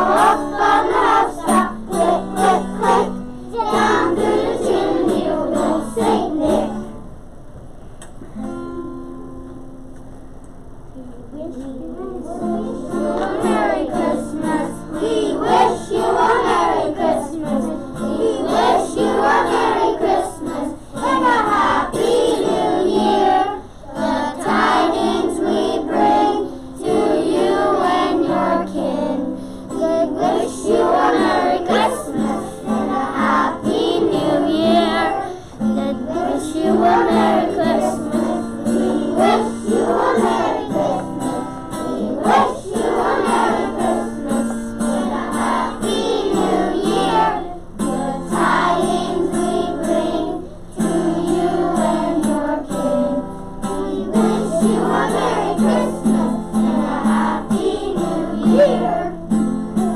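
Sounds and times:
children singing: 0.0 - 7.0, 12.0 - 59.9
instrumental accompaniment: 12.0 - 59.9.

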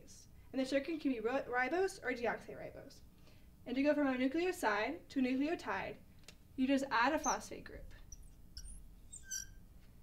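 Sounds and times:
marker squeaking on glass: 7.2 - 9.7.

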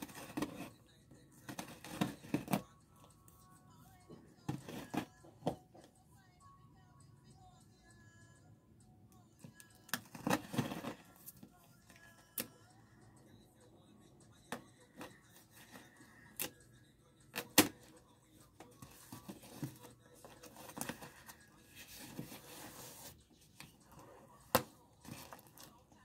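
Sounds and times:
scissors cutting tape and cardboard: 0.0 - 0.7, 1.5 - 2.6, 9.9 - 11.4
faint background music: 0.0 - 26.0.

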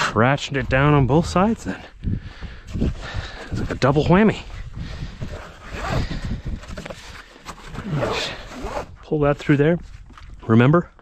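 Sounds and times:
strap webbing rasping through buckle: 5.2 - 9.0.

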